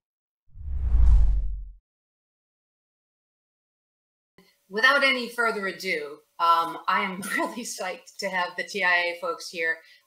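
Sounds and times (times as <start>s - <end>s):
whoosh sound effect: 0.5s - 1.7s
low rumble: 0.5s - 1.8s.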